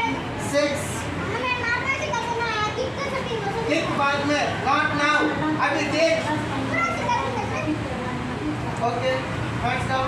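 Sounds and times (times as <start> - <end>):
children talking and calling out: 0.0 - 8.8.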